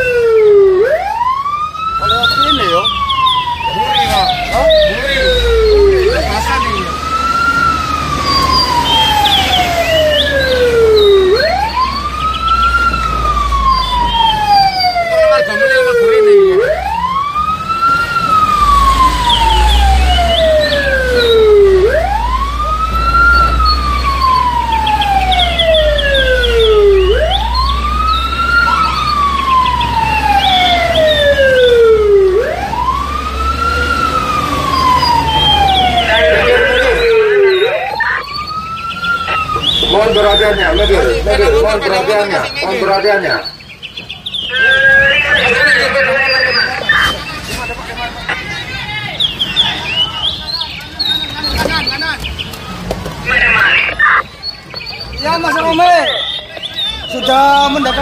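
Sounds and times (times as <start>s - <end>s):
emergency vehicle siren wailing: 0.0s - 58.0s.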